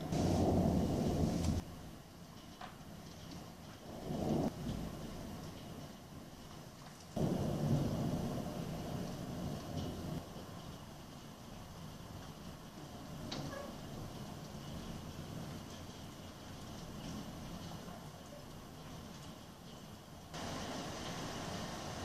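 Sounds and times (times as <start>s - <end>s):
thunder rumbling: 0.0s - 1.6s, 3.8s - 5.9s, 7.2s - 10.5s, 20.4s - 22.0s
steady rain: 0.0s - 22.0s.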